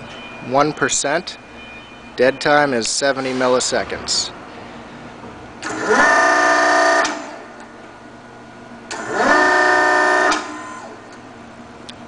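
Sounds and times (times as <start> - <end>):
servo motor and hydraulic pump whining: 5.6 - 7.4, 8.9 - 11.1.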